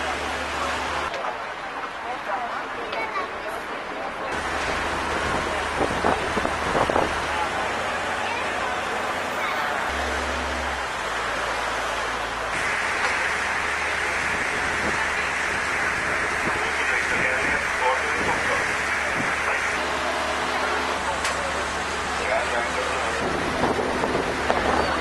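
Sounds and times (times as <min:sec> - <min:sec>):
noisy rush aboard boat: 0:00.0 - 0:25.0
low engine drone: 0:04.3 - 0:25.0.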